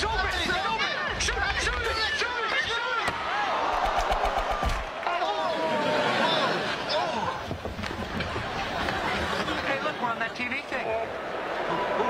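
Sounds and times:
crowd yelling: 0.0 - 12.0.

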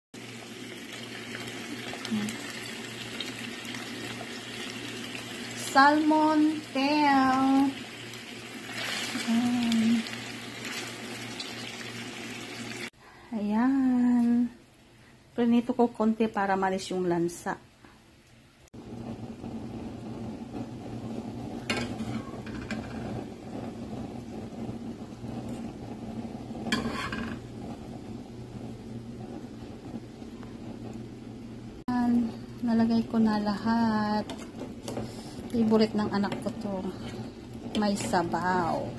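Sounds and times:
low mechanical hum: 0.2 - 38.9.

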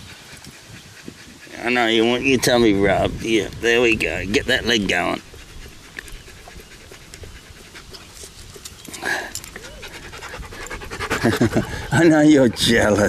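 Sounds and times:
dog panting: 0.0 - 13.0.

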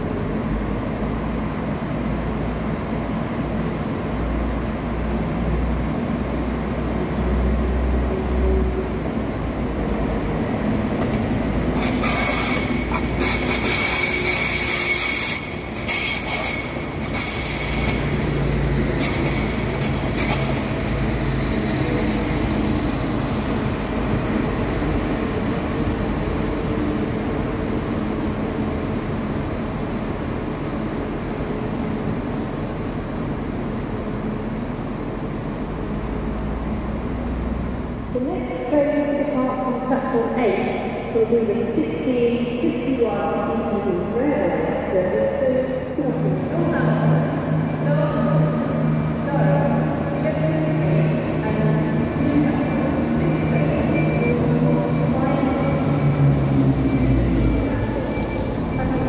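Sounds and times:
diesel train engine rumble: 0.0 - 59.0
high-pitched wheel squeal: 11.8 - 18.0, 56.8 - 59.0.

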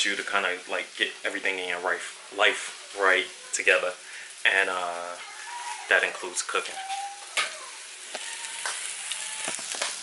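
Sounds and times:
food sizzling in a frying pan: 0.0 - 10.0
sharp popping fat: 7.3 - 10.0.

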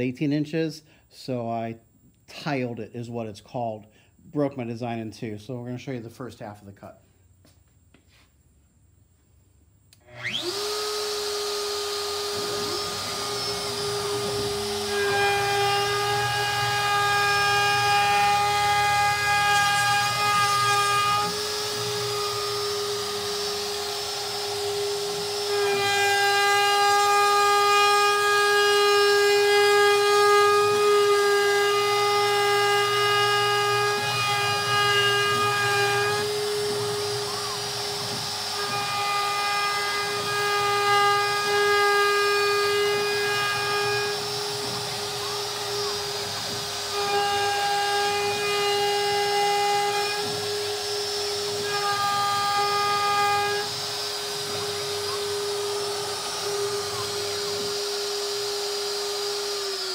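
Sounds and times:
router high-pitched whine: 10.0 - 59.9.

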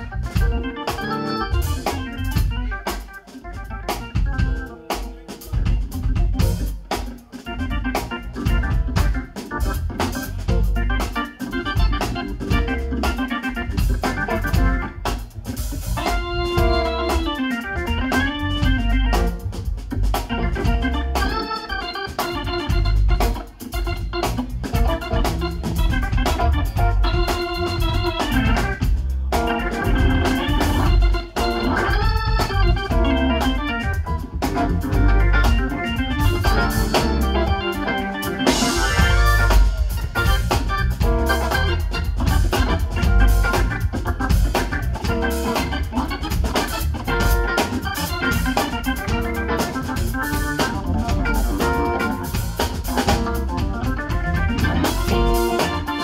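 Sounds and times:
bass and drums: 0.0 - 56.0
organ solo: 0.0 - 56.0.

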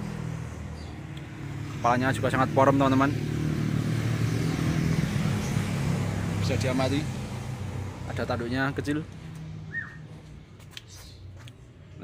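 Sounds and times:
vehicle engine running: 0.0 - 10.7.

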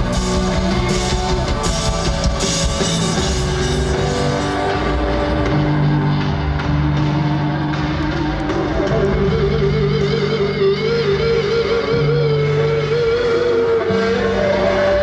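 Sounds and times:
drums: 0.0 - 15.0
live rock band: 0.0 - 15.0
wavering guitar line: 0.0 - 15.0.

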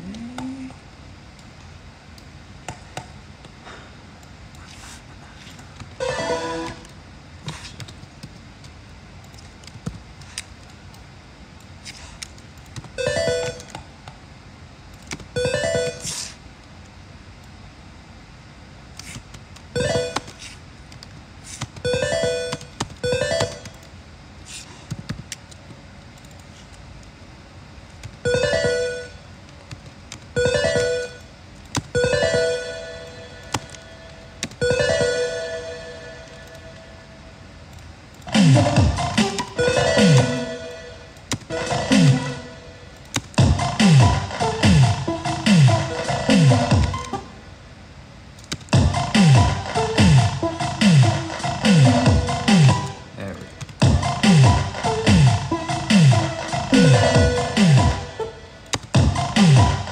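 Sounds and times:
synthesizer electronic music: 38.3 - 47.4, 48.8 - 59.9.

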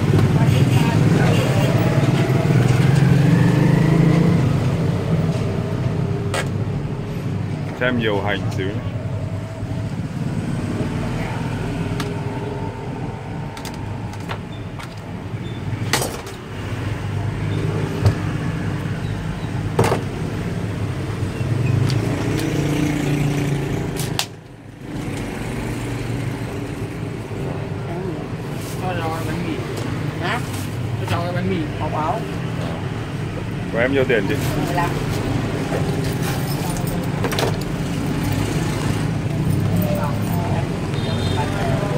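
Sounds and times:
road traffic rumble: 0.0 - 41.9.

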